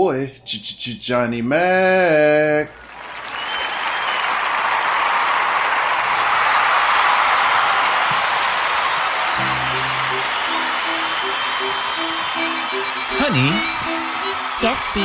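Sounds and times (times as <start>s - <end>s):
applause: 2.7s - 15.0s
low pitched repeating musical riff: 9.4s - 15.0s.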